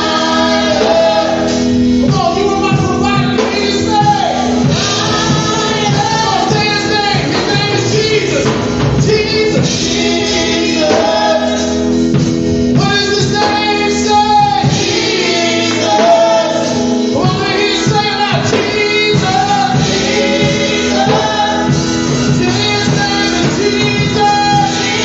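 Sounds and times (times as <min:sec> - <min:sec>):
instrumental accompaniment: 0:00.0 - 0:25.0
man and woman singing gospel: 0:00.0 - 0:25.0.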